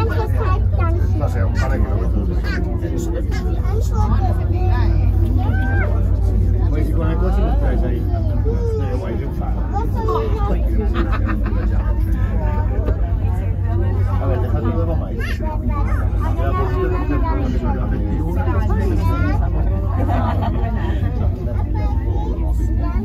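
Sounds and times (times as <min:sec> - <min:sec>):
cable car low rumble: 0:00.0 - 0:23.0
passengers talking: 0:00.0 - 0:23.0.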